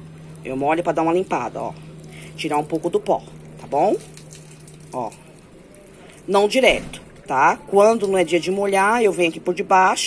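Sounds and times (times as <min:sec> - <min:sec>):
water splashing from a jug: 0:00.0 - 0:10.0.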